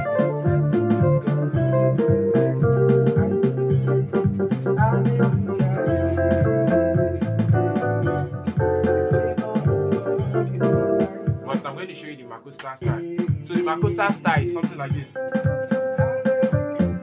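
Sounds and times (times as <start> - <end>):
electronic keyboard gospel chords: 0.0 - 17.0.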